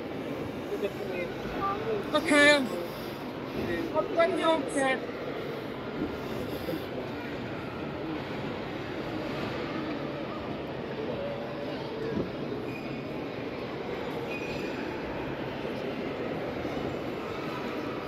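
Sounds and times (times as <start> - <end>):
murmur of voices: 0.0 - 18.0.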